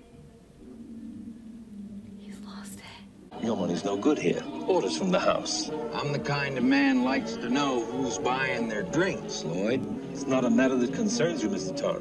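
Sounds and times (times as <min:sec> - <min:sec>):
low steady hum: 0:00.0 - 0:12.0
person whispering: 0:02.2 - 0:03.1.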